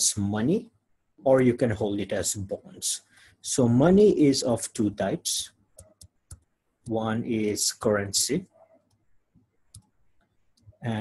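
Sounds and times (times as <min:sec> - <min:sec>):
man talking: 0:00.0 - 0:05.6, 0:06.9 - 0:08.6, 0:10.8 - 0:11.0.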